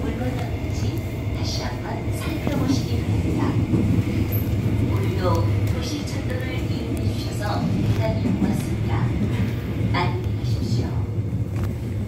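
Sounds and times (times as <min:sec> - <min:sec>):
recorded announcement voice: 0:00.0 - 0:03.8, 0:04.8 - 0:11.2
subway train rumbling: 0:00.0 - 0:12.0.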